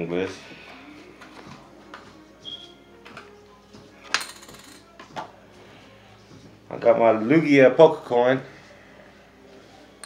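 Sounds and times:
coin clattering with short ring: 0:04.2 - 0:04.8.

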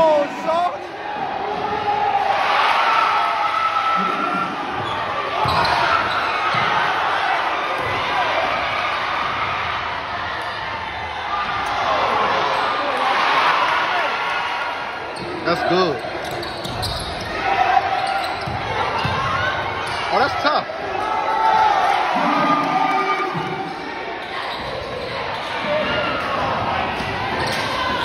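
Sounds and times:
crowd chatter in gym: 0:00.0 - 0:28.0
basketball bouncing on court: 0:04.8 - 0:06.8, 0:18.0 - 0:19.6.

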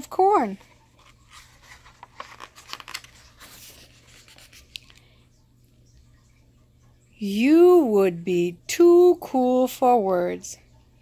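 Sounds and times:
paper page turning: 0:00.5 - 0:05.1.

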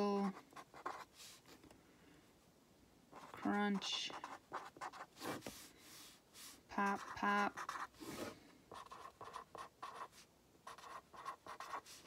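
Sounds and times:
pen scratching on paper: 0:00.5 - 0:01.4, 0:03.1 - 0:12.0.

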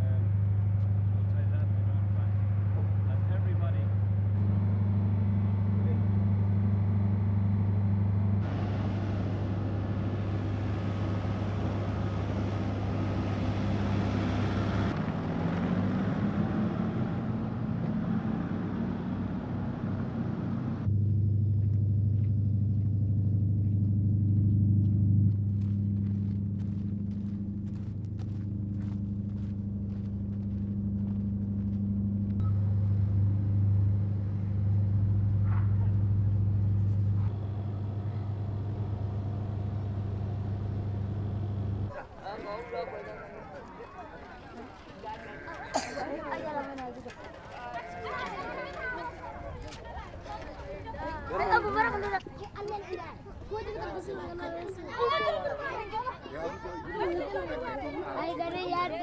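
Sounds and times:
steady low engine hum: 0:00.0 - 0:42.4
vehicles moving: 0:00.0 - 0:59.0.

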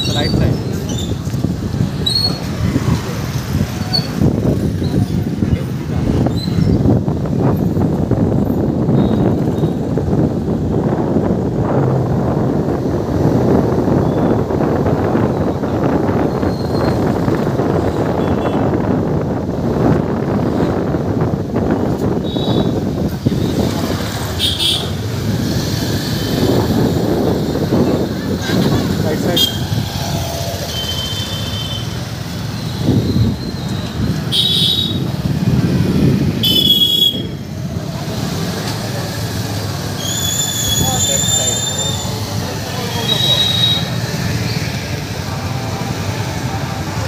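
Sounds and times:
wind buffeting microphone: 0:00.0 - 0:30.7, 0:31.9 - 0:40.0
motorcycle traffic rumble: 0:00.0 - 0:47.0.

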